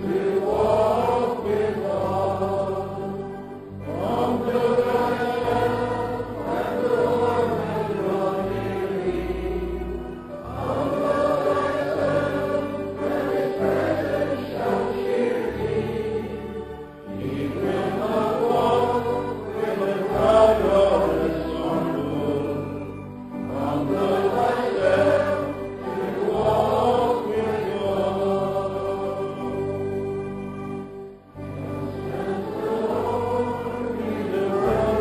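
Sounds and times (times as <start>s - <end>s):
group singing a hymn: 0.0s - 35.0s
instrumental accompaniment with bass: 0.0s - 35.0s.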